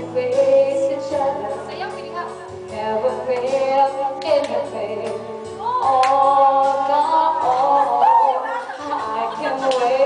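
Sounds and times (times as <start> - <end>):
woman singing slow song: 0.0 - 2.0, 2.6 - 10.0
backing music: 0.0 - 10.0.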